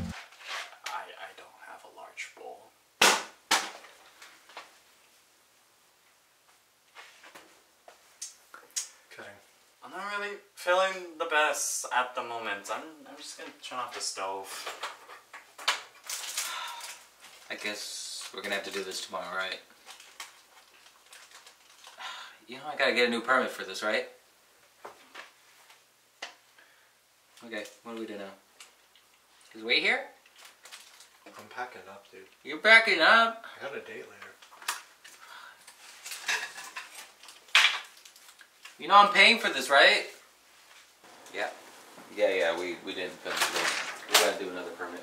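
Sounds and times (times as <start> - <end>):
breathy gas hiss: 16.4 - 17.0, 21.9 - 22.5.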